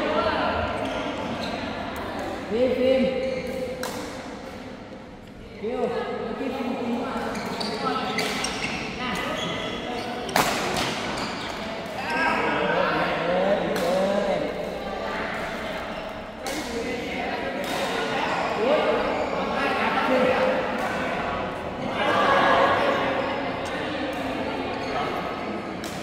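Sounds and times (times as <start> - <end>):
racket hitting shuttlecock: 3.5 - 4.6, 10.3 - 11.2.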